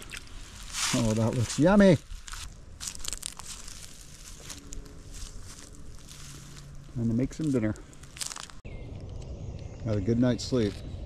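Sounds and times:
crinkling and rustling handling: 0.0s - 8.6s.

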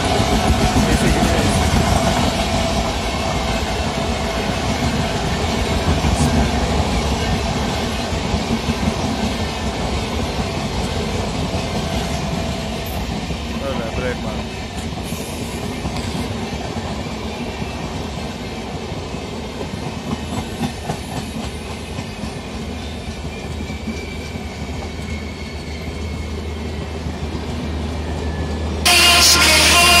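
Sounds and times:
train rumbling past: 0.0s - 30.0s.

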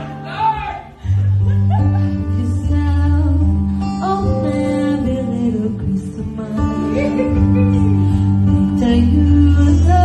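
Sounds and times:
live guitar: 0.0s - 10.0s
woman singing into a microphone: 1.3s - 10.0s.

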